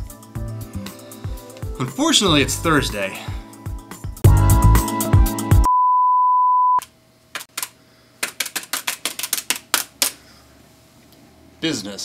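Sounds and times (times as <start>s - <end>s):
music: 0.0s - 5.7s
electronic beep tone: 5.7s - 6.8s.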